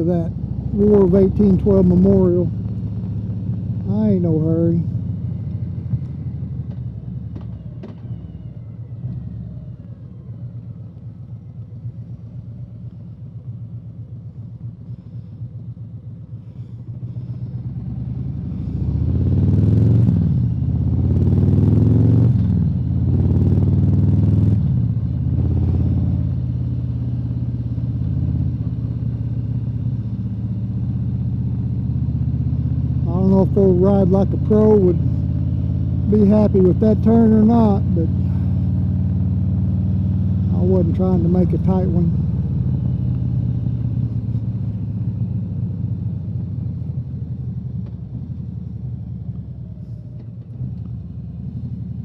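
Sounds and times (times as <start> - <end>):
motorcycle engine: 0.0 - 52.0.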